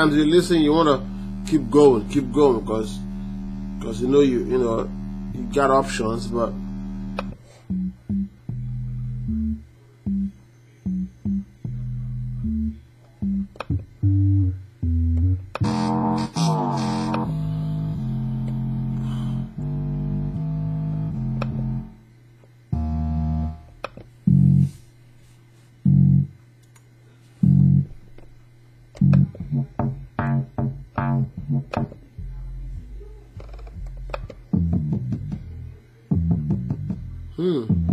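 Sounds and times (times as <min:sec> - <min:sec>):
melodic music loops: 0:00.0 - 0:22.0, 0:22.7 - 0:24.7, 0:29.0 - 0:32.0
quick run of short notes: 0:15.6 - 0:21.9.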